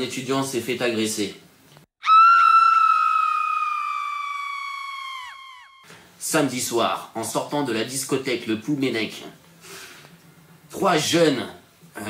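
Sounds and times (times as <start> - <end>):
woman screaming: 2.0 - 5.9.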